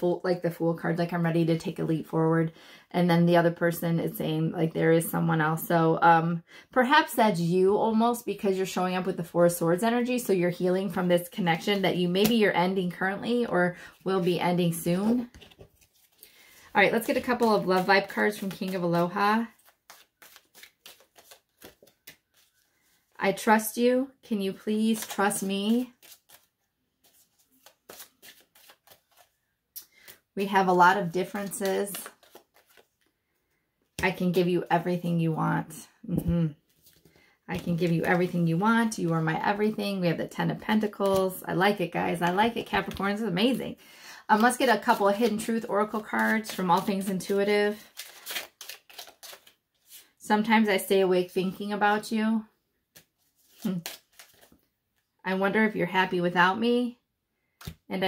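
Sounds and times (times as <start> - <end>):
cards being shuffled: 14.0 - 23.0, 24.7 - 33.1, 36.2 - 38.5, 40.8 - 41.4, 44.4 - 50.2, 52.9 - 54.7, 57.6 - 57.8.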